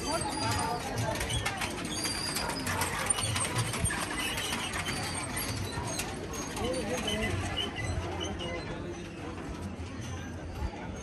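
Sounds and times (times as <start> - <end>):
prayer wheels clattering: 0.0 - 11.0.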